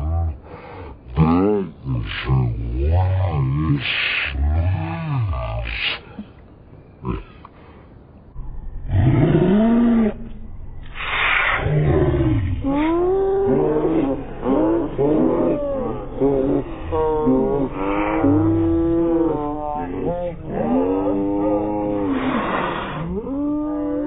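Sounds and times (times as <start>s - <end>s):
children laughing: 12.7s - 20.4s.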